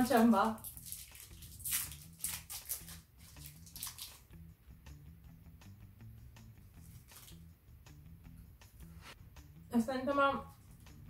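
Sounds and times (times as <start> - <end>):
quiet background music: 0.0 - 11.0.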